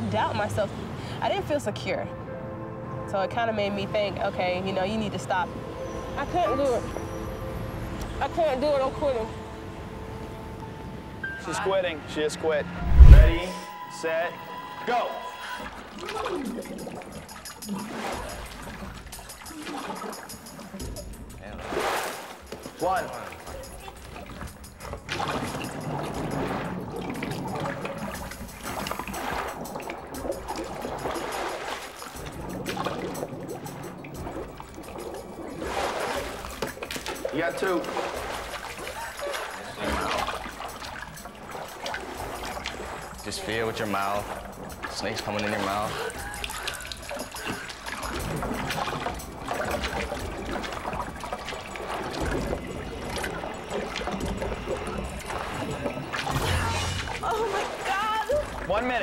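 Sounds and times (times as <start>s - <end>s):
background music: 0.0s - 59.0s
water sloshing and splashing: 12.8s - 13.5s, 15.4s - 59.0s.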